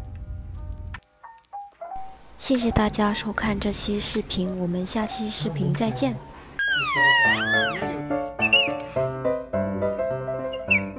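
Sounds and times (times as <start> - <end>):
baby squealing: 6.6 - 8.8, 10.5 - 10.9
background music with chords: 7.3 - 10.9.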